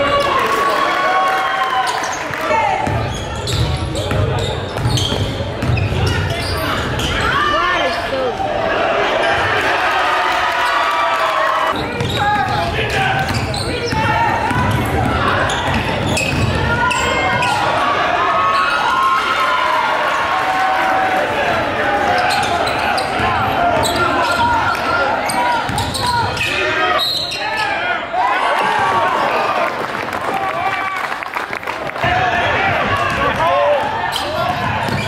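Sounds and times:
voices in a hall: 0.0s - 35.0s.

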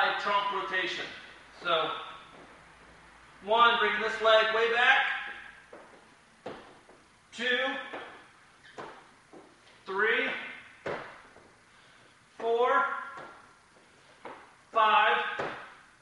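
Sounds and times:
man counting aloud: 0.0s - 2.2s, 3.4s - 5.4s, 7.3s - 8.2s, 9.9s - 10.7s, 12.4s - 13.2s, 14.7s - 15.6s.

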